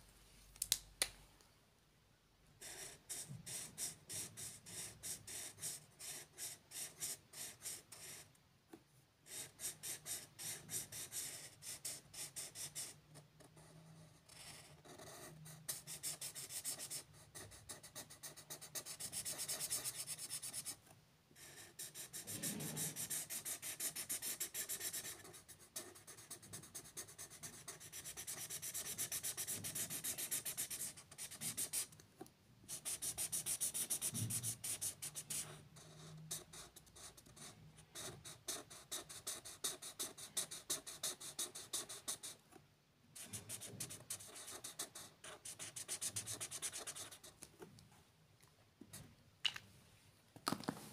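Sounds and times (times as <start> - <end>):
marker scratching on paper: 2.6 - 8.2, 9.3 - 20.8, 21.4 - 32.0, 32.7 - 42.4, 43.2 - 47.3.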